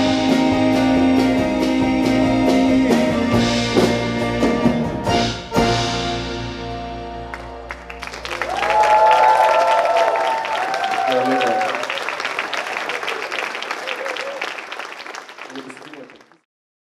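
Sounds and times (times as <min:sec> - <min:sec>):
audience applauding: 0:07.3 - 0:16.5.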